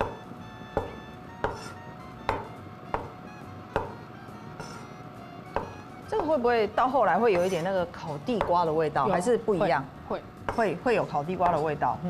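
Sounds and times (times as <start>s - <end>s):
cleaver chopping on wooden board: 0.8s - 4.0s, 5.5s - 5.8s.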